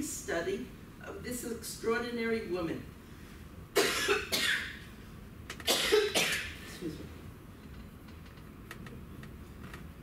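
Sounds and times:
woman coughing: 0:03.8 - 0:04.8, 0:05.7 - 0:06.6.

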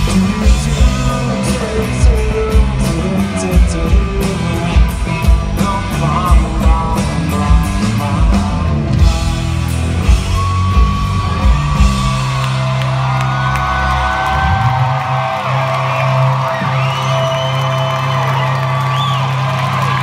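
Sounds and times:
rock band playing: 0:00.0 - 0:20.0
audience whooping and yelling: 0:09.6 - 0:20.0.

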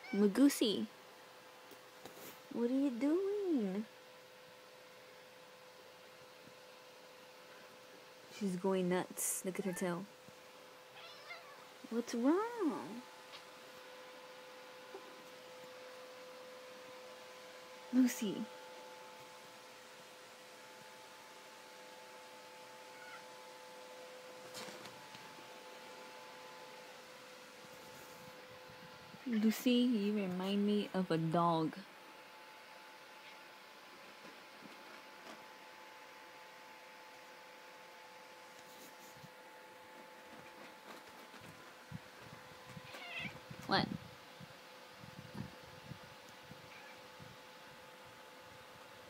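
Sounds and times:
electrical hum: 0:00.0 - 0:49.0
cat calling: 0:11.0 - 0:11.7, 0:22.9 - 0:23.3, 0:42.8 - 0:43.4
cat crying: 0:11.0 - 0:11.7, 0:22.9 - 0:23.3, 0:42.9 - 0:43.4.

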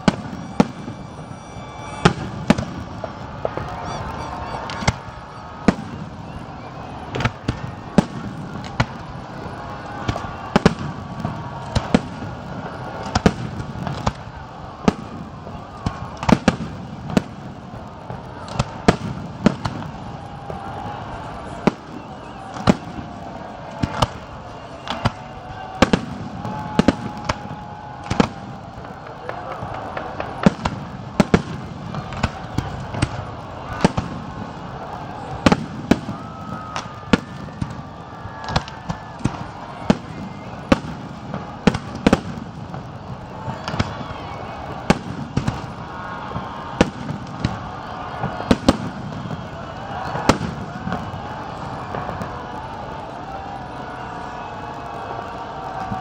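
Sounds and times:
fireworks bursting in sharp bangs: 0:00.0 - 0:54.1.

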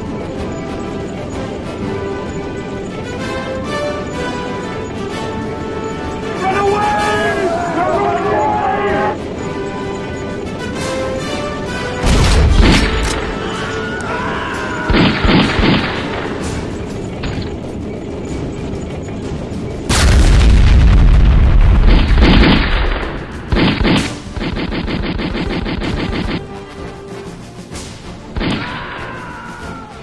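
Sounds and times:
music: 0:00.0 - 0:30.0
gunfire bursts: 0:11.8 - 0:13.5, 0:14.9 - 0:16.7, 0:21.6 - 0:26.5
rapid machine-gun fire: 0:14.9 - 0:16.6, 0:19.9 - 0:26.4
loud explosion boom: 0:19.9 - 0:23.2.

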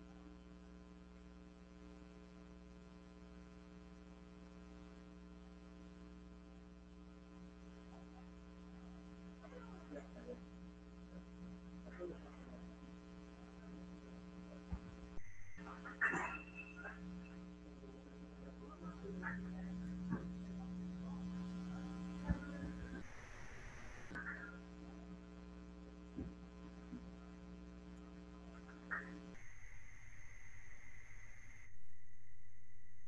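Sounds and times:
electrical mains hum: 0:00.0 - 0:33.0
faint indistinct sounds: 0:06.5 - 0:33.0.

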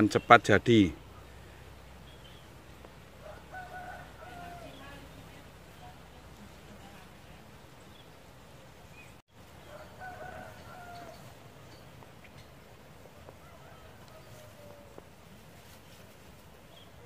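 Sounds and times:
rooster crowing: 0:03.2 - 0:04.9, 0:09.6 - 0:11.5, 0:13.2 - 0:15.0.

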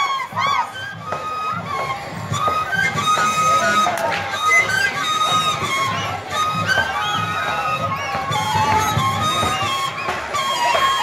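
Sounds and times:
flute melody: 0:00.0 - 0:11.0
shrill cries from crowd: 0:00.0 - 0:11.0
hand drum beats: 0:00.3 - 0:11.0.

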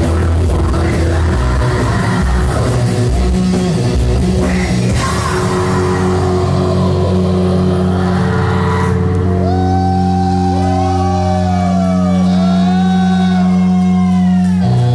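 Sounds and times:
drums and cymbals: 0:00.0 - 0:08.0
electric guitars sustained chord: 0:00.0 - 0:14.9.

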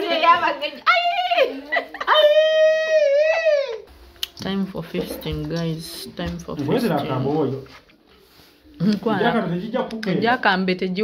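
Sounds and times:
woman's high-pitched cry: 0:00.9 - 0:03.9.

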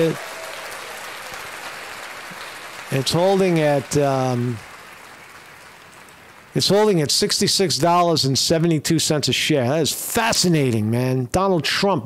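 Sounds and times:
steady background hiss: 0:00.0 - 0:12.0
man speaking: 0:02.9 - 0:04.6, 0:06.6 - 0:12.0.

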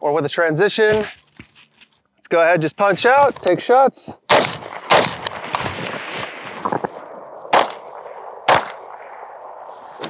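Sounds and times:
pistol shots: 0:04.3 - 0:06.4, 0:07.0 - 0:09.6
carbine shot: 0:04.3 - 0:09.7.

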